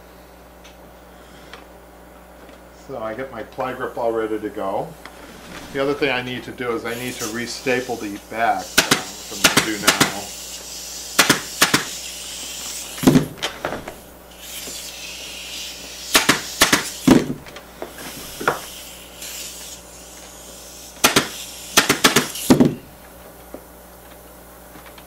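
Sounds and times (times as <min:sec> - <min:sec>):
air hiss: 0:05.0 - 0:23.0
pneumatic staple gun firing: 0:08.6 - 0:22.9.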